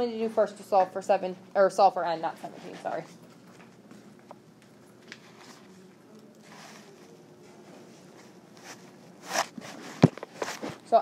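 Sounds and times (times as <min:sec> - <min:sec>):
soft scuffs and rustles: 0:05.0 - 0:11.0.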